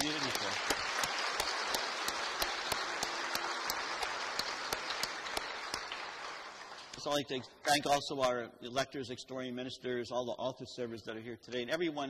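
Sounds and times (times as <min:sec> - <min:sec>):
congregation applauding: 0:00.0 - 0:07.8.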